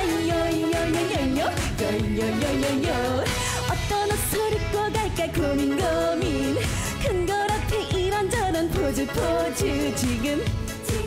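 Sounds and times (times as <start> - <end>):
backing music with dance beat: 0.0 - 11.0
woman singing into microphone: 0.0 - 11.0.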